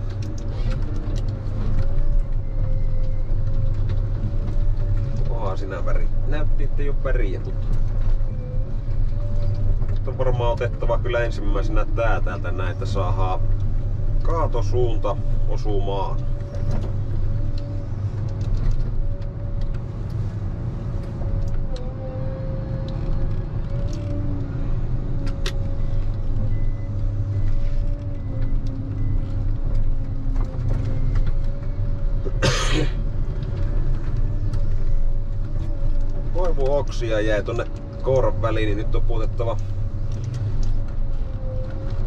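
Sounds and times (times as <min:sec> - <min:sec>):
diesel engine running: 0:00.0 - 0:42.0.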